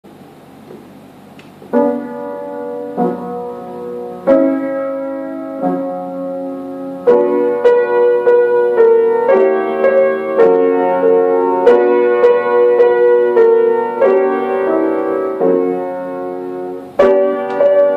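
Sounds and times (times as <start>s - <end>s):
grand piano playing: 1.6s - 17.9s.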